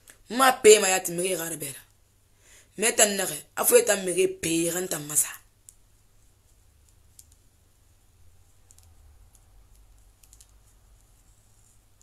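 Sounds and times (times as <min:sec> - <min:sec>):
faint small clicks: 0:06.8 - 0:07.4, 0:08.6 - 0:11.1.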